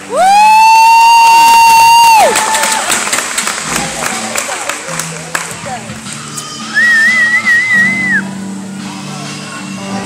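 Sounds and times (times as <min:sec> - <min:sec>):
loud high woo cheer: 0:00.0 - 0:03.0
audience cheering and clapping: 0:00.0 - 0:05.5.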